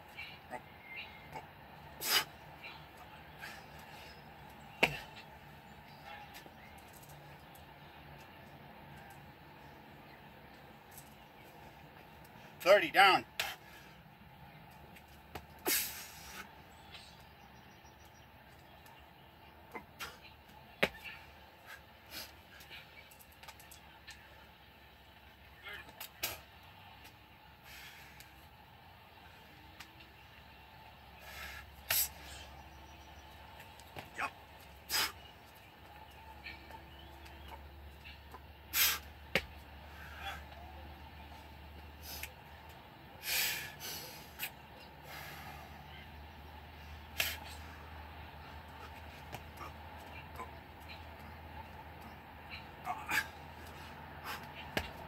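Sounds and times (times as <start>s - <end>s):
faint outdoor background: 0.0s - 55.0s
man breathing hard: 27.6s - 28.3s, 43.2s - 44.4s, 45.0s - 45.8s
man grunting: 52.8s - 53.4s.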